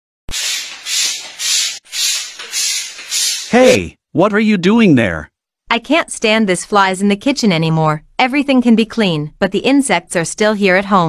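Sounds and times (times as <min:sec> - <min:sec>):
sprayer click: 0:00.3 - 0:03.5
hand-pump sprayer hissing: 0:00.3 - 0:03.8.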